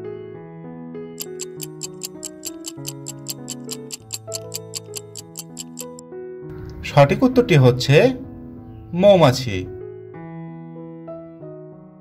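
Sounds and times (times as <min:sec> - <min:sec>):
clock ticking fast: 0:01.2 - 0:06.0.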